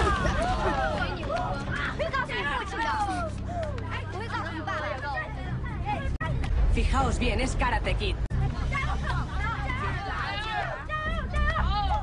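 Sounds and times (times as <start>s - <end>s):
boys chattering: 8.3s - 12.0s.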